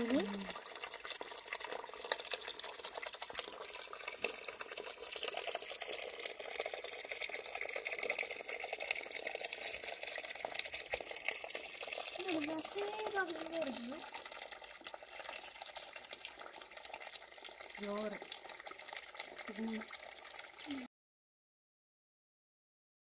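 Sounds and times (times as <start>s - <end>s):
water trickling and splashing: 0.0s - 20.9s.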